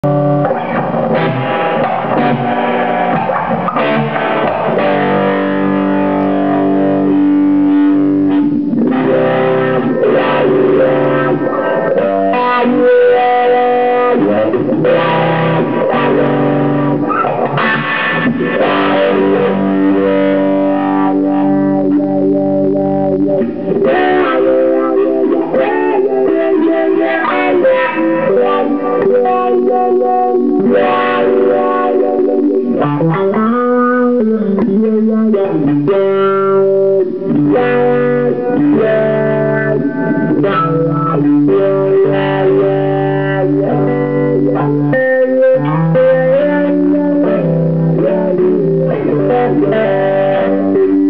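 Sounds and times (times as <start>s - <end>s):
electric guitar ringing chords: 0.0s - 51.0s.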